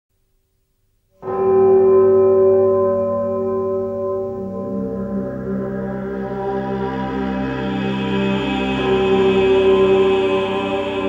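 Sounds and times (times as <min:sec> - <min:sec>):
ambient music: 0:01.2 - 0:11.0.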